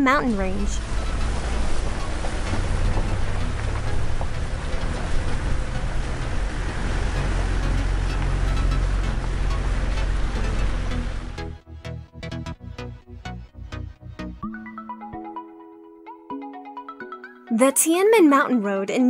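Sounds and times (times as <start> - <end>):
vehicle engine and tyres rumble: 0.0 - 14.3
music: 0.0 - 19.0.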